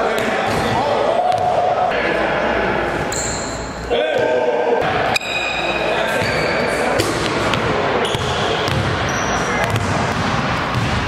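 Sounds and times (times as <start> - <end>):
echoing voices: 0.0 - 11.0.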